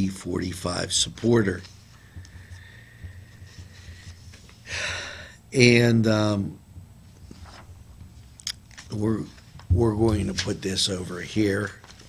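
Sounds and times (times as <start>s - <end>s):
paper rustling: 7.1s - 12.0s.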